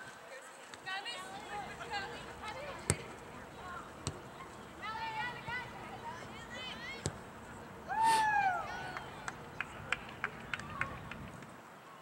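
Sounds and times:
loud long yell: 7.9s - 9.0s
sharp claps: 8.9s - 11.5s.

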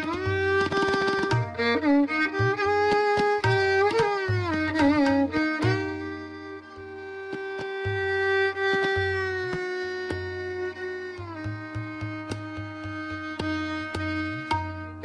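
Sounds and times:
sharp tabla strokes: 0.0s - 15.0s
violin playing slow phrase: 0.0s - 15.0s.

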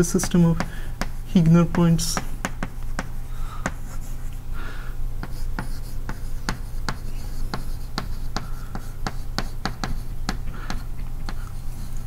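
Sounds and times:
chalk tapping and scratching: 0.0s - 4.3s, 5.2s - 12.0s.

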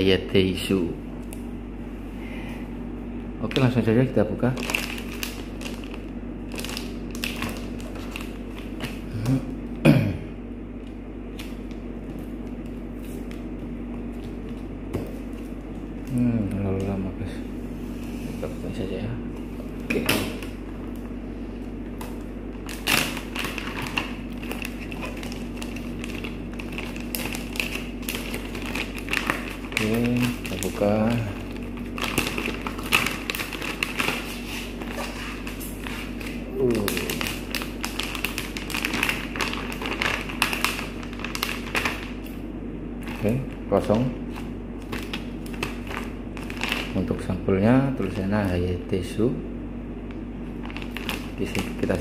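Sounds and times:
steady low hum: 0.0s - 52.0s
plastic packaging crinkling: 3.4s - 9.3s, 22.0s - 42.4s, 43.0s - 47.2s, 50.4s - 52.0s.

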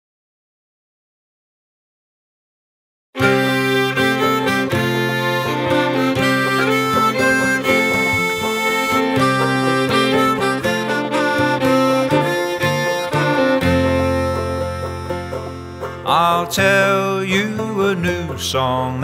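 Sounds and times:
acoustic folk band playing: 3.2s - 19.0s.

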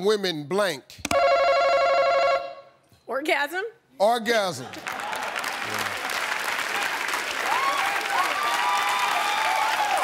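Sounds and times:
electronic buzzer ringing tone: 1.1s - 2.7s.

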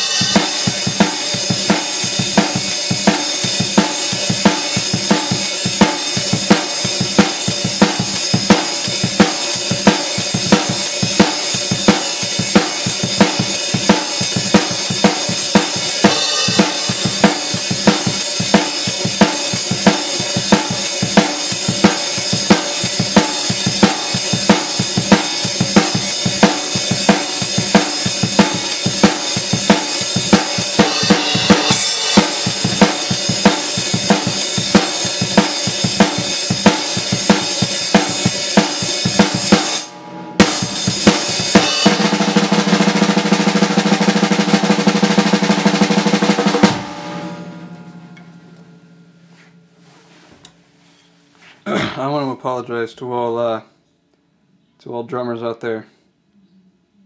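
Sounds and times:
cymbals ringing: 0.0s - 42.3s, 46.3s - 51.2s
drum kit rock beat: 0.0s - 50.8s.

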